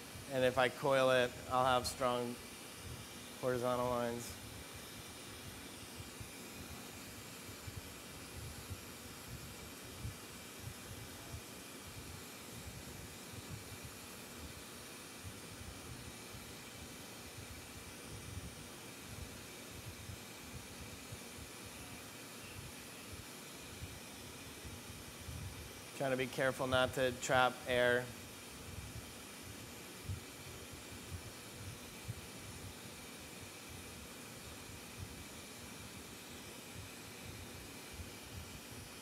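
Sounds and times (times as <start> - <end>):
torch burning with hiss: 0.0 - 39.0.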